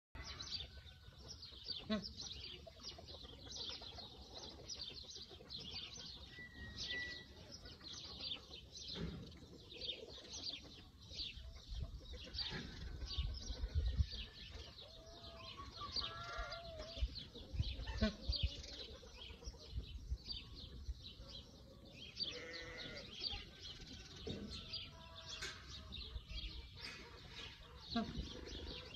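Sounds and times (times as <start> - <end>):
small birds chirping: 0.3 - 28.9
bleat-like animal call: 22.3 - 23.1.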